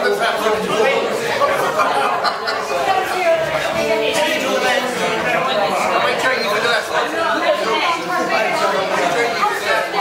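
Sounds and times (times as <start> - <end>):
crowd babble: 0.0 - 10.0.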